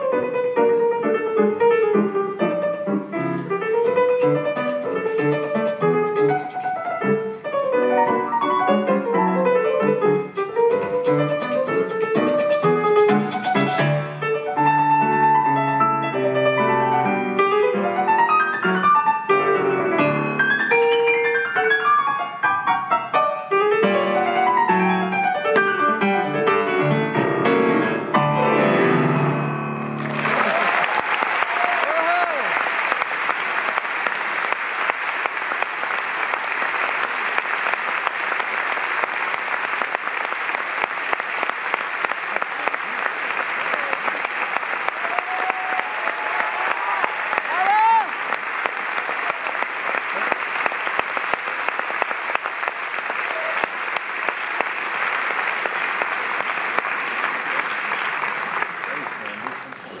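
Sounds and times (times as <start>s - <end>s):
large audience applauding: 10.2s - 15.2s, 29.8s - 60.0s.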